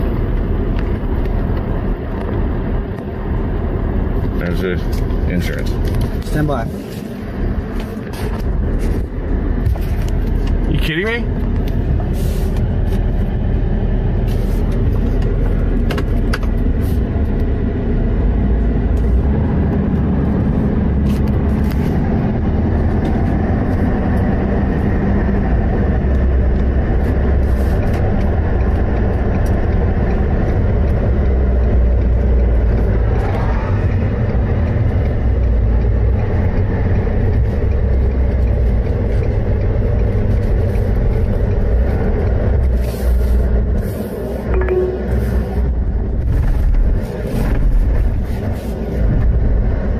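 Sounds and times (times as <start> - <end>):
truck engine and road noise: 0.0 - 49.9.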